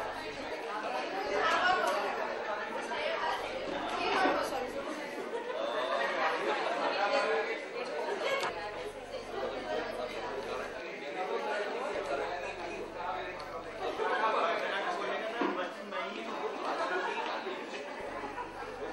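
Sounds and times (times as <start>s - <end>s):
crowd chatter: 0.0s - 18.9s.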